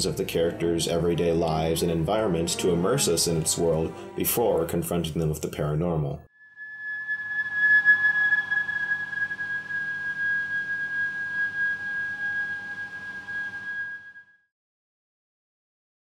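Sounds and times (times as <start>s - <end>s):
high steady whistling tone: 6.3s - 14.5s
faint sustained tones: 6.4s - 14.3s.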